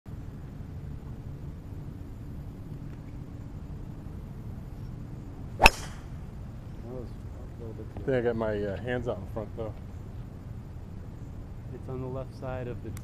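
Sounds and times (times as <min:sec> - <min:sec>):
low background rumble: 0:00.1 - 0:08.0
golf club striking ball: 0:05.6 - 0:06.2.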